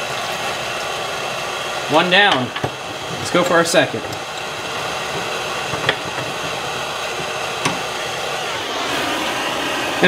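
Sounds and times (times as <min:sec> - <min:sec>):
gas torch hissing: 0:00.0 - 0:10.0.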